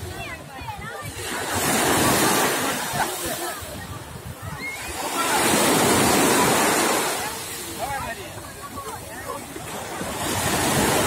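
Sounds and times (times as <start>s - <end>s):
small waves washing onto beach: 0.0s - 11.0s.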